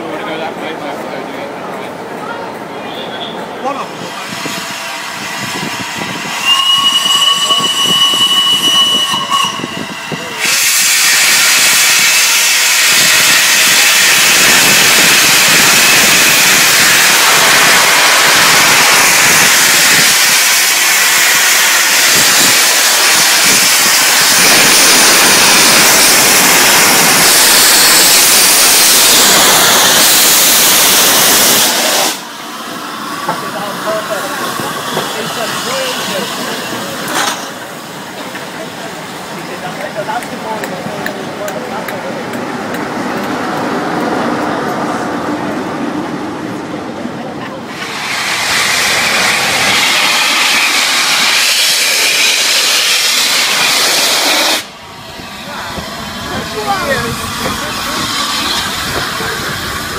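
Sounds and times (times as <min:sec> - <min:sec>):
loud steam hiss: 0:03.2 - 0:45.1, 0:47.6 - 0:59.9
steam whistle: 0:06.3 - 0:17.2.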